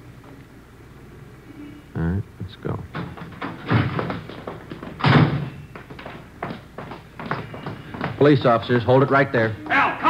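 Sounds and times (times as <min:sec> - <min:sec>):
knocks and thumps: 0:02.9 - 0:08.3.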